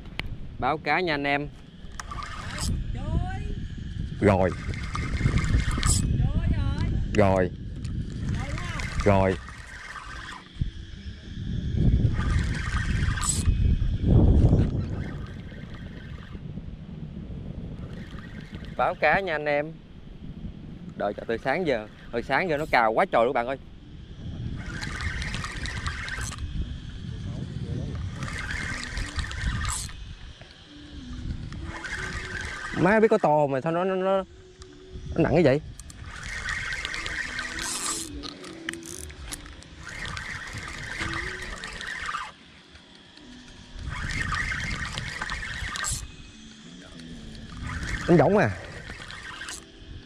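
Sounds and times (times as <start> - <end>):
wind rumble on microphone: 0.0 - 42.4, 43.0 - 50.0
fishing reel ticking whir: 0.0 - 50.0.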